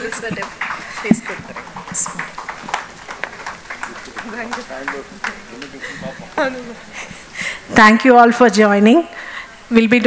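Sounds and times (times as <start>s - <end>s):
low voices of people: 0.0s - 7.8s.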